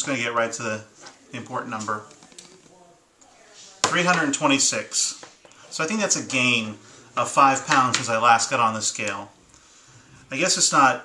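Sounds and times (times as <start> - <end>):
man speaking: 0.0 - 2.2, 3.8 - 9.4, 10.3 - 11.0.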